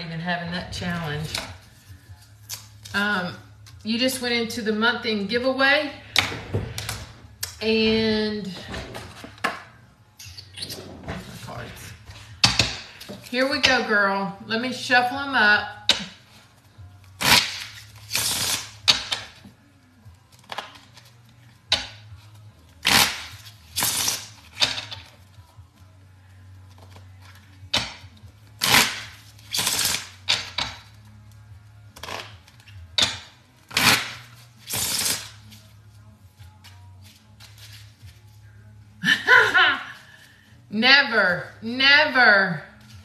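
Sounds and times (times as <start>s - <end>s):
playing cards riffle-shuffled: 33.7s - 38.4s.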